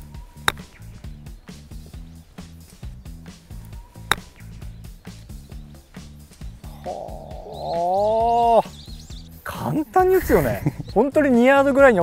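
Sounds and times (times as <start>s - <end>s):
music with steady beat: 0.0s - 9.3s
golf club striking ball: 0.2s - 6.8s.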